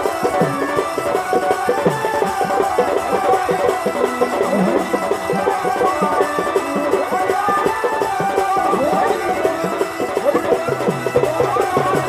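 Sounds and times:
hand drum beating a rhythm: 0:00.0 - 0:12.0
repeating folk melody: 0:00.0 - 0:12.0.

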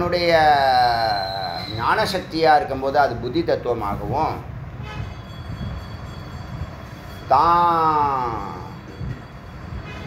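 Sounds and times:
faint high steady tones: 0:00.0 - 0:10.0
person speaking: 0:07.3 - 0:08.8.

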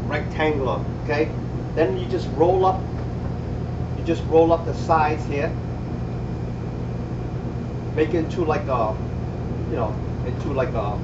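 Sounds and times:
ventilation fan humming: 0:00.0 - 0:11.0.

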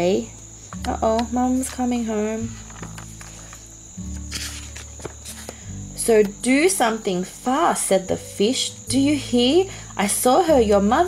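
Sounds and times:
paper pages rustling: 0:02.5 - 0:05.7.

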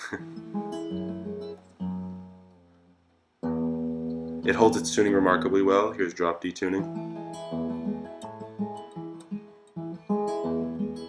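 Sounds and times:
acoustic guitar chords ringing: 0:00.0 - 0:11.0.

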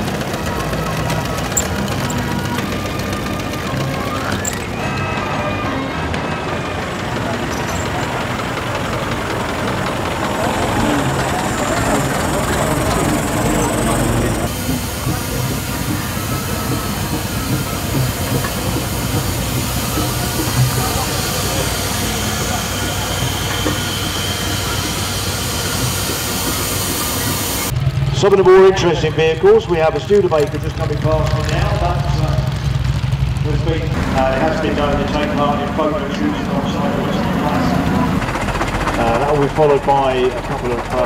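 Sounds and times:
indistinct voices: 0:00.0 - 0:41.0
steam hiss: 0:10.0 - 0:27.7.

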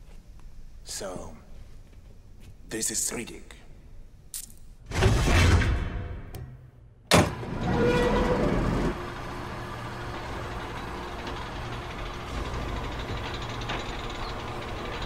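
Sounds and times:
low mechanical drone: 0:07.3 - 0:15.0.

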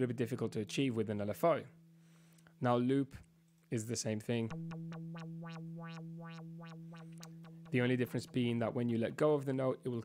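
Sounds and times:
synthesizer low note pulsing filter: 0:04.5 - 0:09.0.

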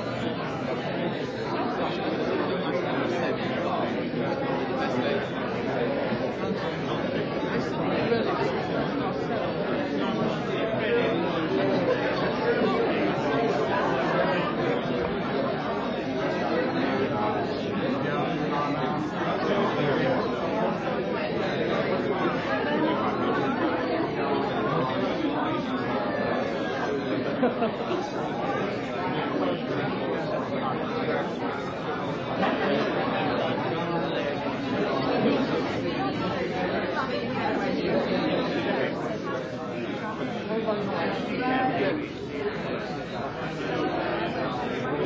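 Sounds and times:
crowd chatter: 0:00.0 - 0:45.0.

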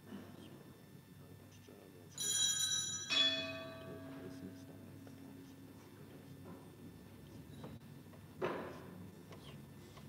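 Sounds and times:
altar bell ringing: 0:02.2 - 0:04.3.

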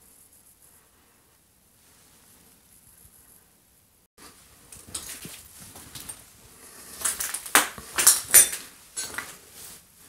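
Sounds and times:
scuffing and crunching footsteps: 0:04.2 - 0:09.9.

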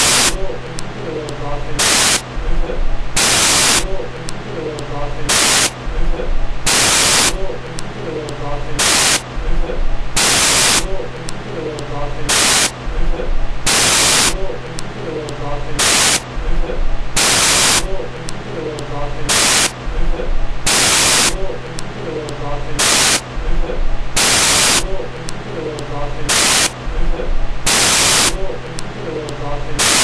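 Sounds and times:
loud burst of static hiss: 0:00.0 - 0:00.7, 0:01.6 - 0:04.2, 0:05.1 - 0:07.9, 0:08.6 - 0:11.2, 0:12.1 - 0:15.0, 0:15.6 - 0:18.2, 0:19.1 - 0:21.8, 0:22.6 - 0:25.3, 0:26.1 - 0:28.8, 0:29.6 - 0:30.0
faint voices: 0:00.0 - 0:30.0
steady low hum: 0:00.0 - 0:30.0.

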